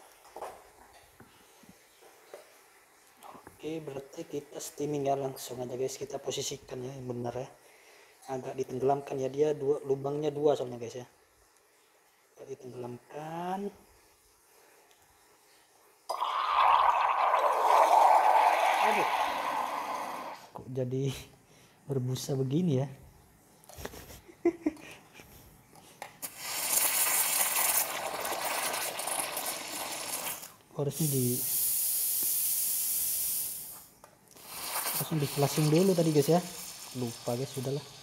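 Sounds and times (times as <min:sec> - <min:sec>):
steam wand hissing into milk: 0:16.1 - 0:20.5, 0:26.2 - 0:38.0.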